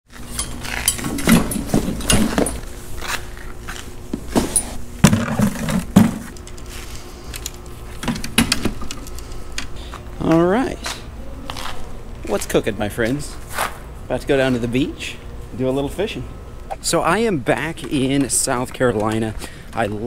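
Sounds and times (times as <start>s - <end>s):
bucket rattling against metal cart: 0.4s - 2.6s.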